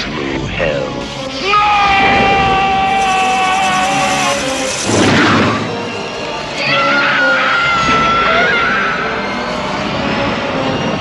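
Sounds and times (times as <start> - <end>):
loud rushing drone: 0.0 - 11.0.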